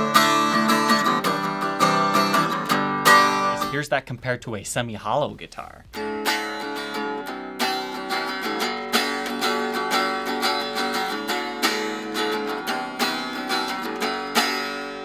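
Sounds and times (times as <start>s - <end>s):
unplugged electric guitar strummed: 0.0s - 3.8s, 5.9s - 15.0s.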